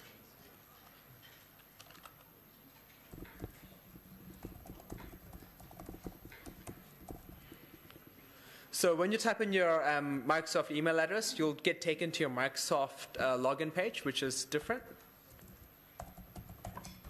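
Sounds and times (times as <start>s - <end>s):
faint steady hum: 0.1s - 9.0s
keyboard typing: 3.1s - 8.0s, 15.3s - 17.0s.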